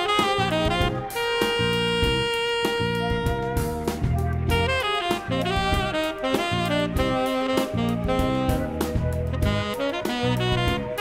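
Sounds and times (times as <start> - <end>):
bass line: 0.0 - 11.0
light drums: 0.0 - 11.0
tenor saxophone long note: 0.0 - 11.0.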